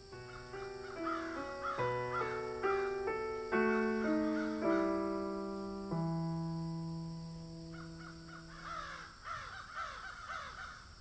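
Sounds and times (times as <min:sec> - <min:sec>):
piano notes: 0:00.0 - 0:08.8
crow cawing: 0:00.1 - 0:05.2, 0:07.7 - 0:11.0.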